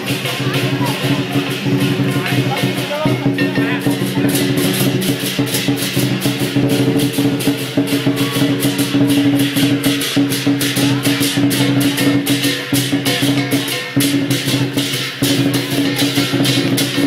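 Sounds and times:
big drum beating: 0.0 - 17.0
cymbals clashing: 0.0 - 17.0.

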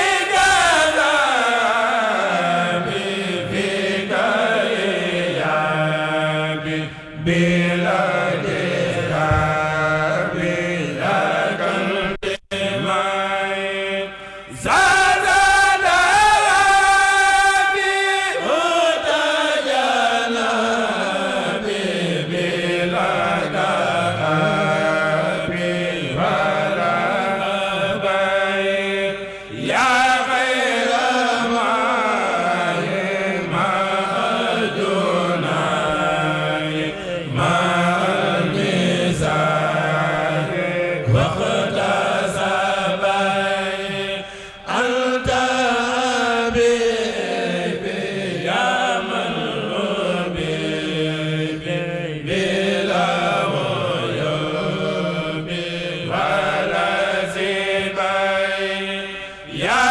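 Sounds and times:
men chanting unaccompanied: 0.0 - 59.9.

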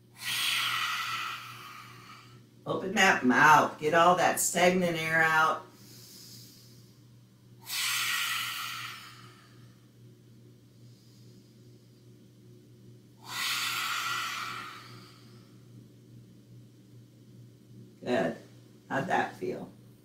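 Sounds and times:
forceful open-mouthed exhalations: 0.2 - 2.4, 7.6 - 9.5, 13.2 - 15.4.

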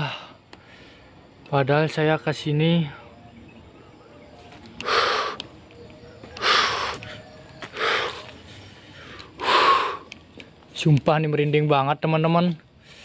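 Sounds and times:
man breathing heavily: 0.0 - 1.4, 4.2 - 10.8, 12.7 - 13.0.

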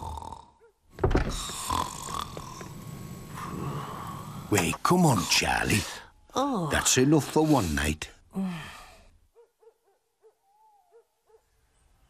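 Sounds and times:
breathy sigh: 8.3 - 9.2.

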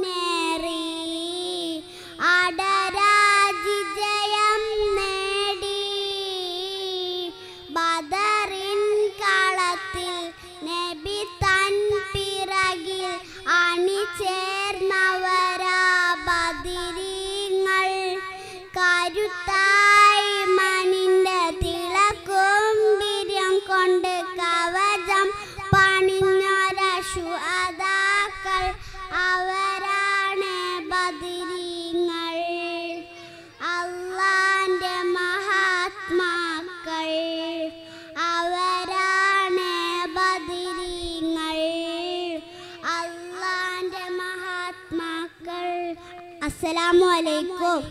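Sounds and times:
girl singing into a microphone: 0.0 - 47.9.

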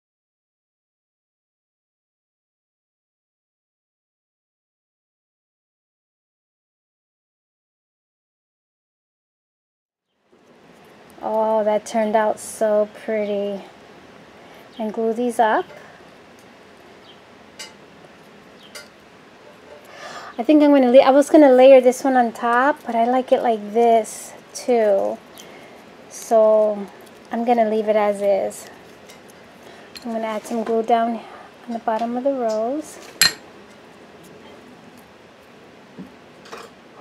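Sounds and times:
steady low hiss: 10.2 - 37.0.

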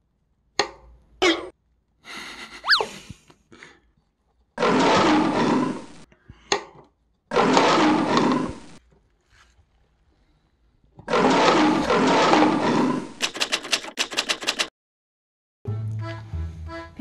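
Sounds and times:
sharp clicks: 13.2 - 14.7.

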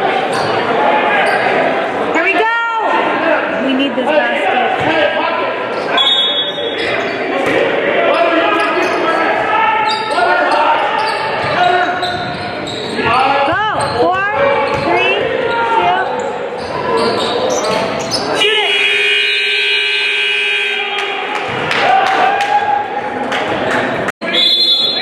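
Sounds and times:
crowd voices and shouts: 0.0 - 25.0
sneakers squeaking on court: 9.8 - 18.4
scoreboard horn: 18.4 - 21.1.

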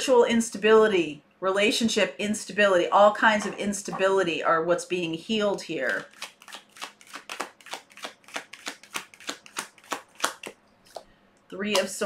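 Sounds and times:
cards being shuffled: 5.9 - 11.1.

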